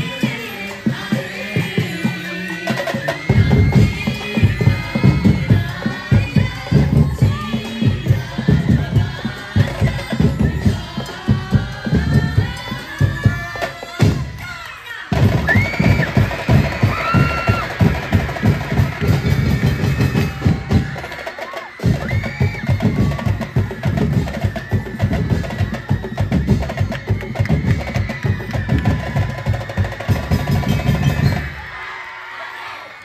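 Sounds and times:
fast drum percussion music: 0.0s - 31.8s.

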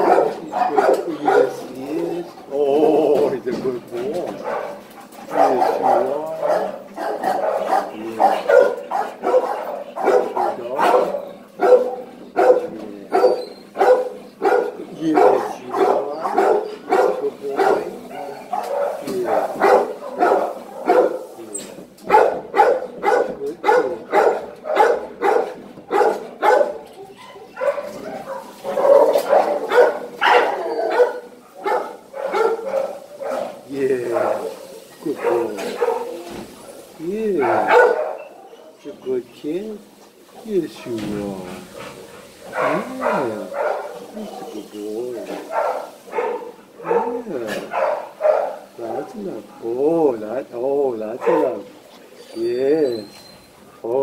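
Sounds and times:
dog moaning and grumbling: 0.0s - 39.2s, 40.4s - 48.0s.

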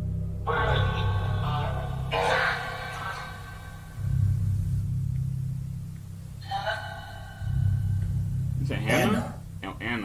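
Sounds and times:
low steady drone: 0.0s - 10.0s
voice through electronic device: 0.5s - 3.8s, 8.7s - 9.4s.

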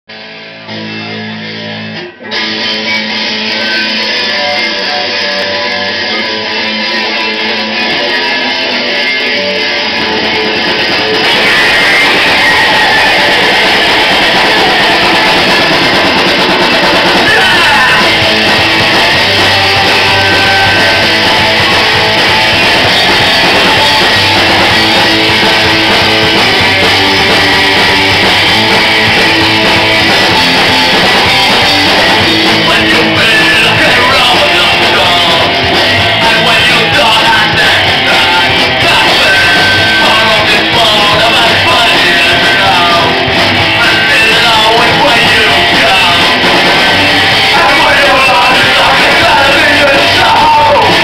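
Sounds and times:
punk rock band playing: 0.1s - 51.0s.

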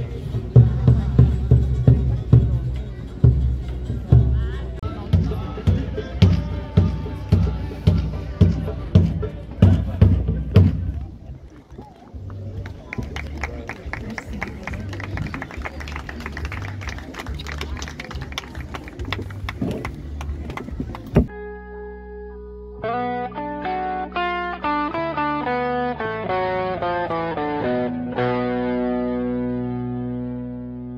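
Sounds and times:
live crowd with sharp claps: 9.6s - 21.3s
electric guitar with effects: 21.3s - 30.9s.

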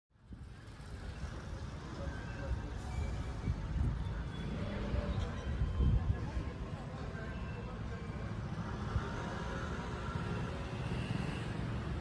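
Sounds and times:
faint voices of passers-by: 0.2s - 12.0s
road traffic rumble: 0.2s - 12.0s.

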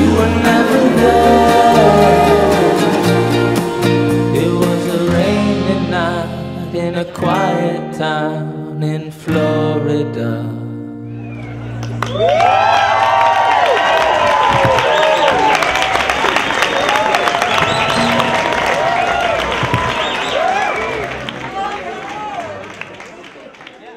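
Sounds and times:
acoustic guitar chord ringing: 0.0s - 11.1s, 17.8s - 18.8s
audience cheering and whooping: 11.3s - 23.0s
audience clapping: 11.7s - 23.9s.

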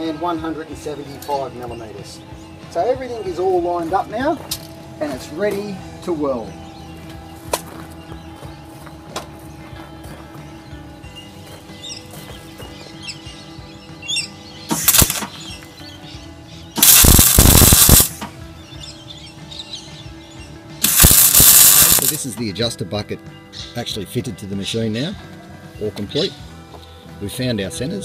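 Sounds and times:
soft music: 0.0s - 28.0s
welding arc crackling: 14.7s - 15.3s, 16.8s - 18.2s, 20.8s - 22.2s.

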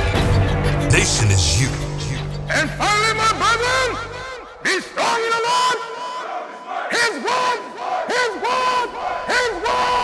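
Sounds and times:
crowd shouting together: 5.0s - 10.0s.

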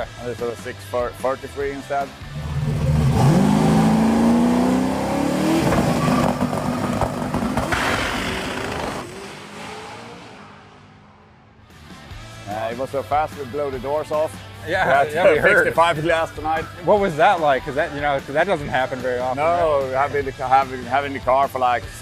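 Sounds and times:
drag car engine at full throttle: 2.1s - 11.7s.

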